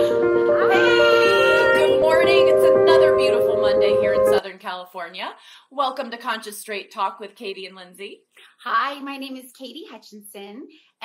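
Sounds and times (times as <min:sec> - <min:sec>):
gentle intro music: 0:00.0 - 0:04.4.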